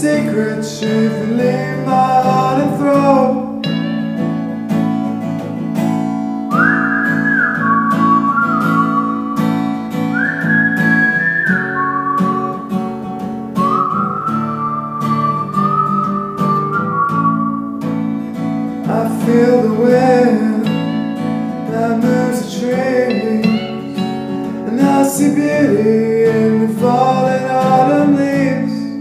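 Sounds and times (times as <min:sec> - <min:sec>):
acoustic guitar strumming: 0:00.0 - 0:29.0
whistled melody: 0:06.4 - 0:18.6, 0:22.0 - 0:29.0.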